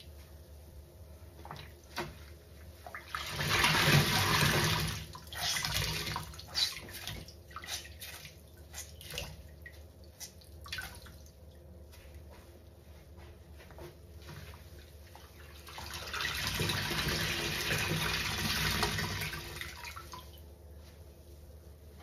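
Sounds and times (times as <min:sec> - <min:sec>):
water gushing from sponge: 0:03.0 - 0:09.4
wet sponge squelches: 0:05.1 - 0:11.2.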